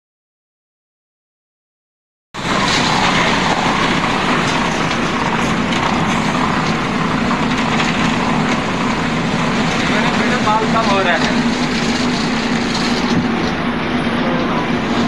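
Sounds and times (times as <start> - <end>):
concrete batching plant running: 2.4 - 15.0.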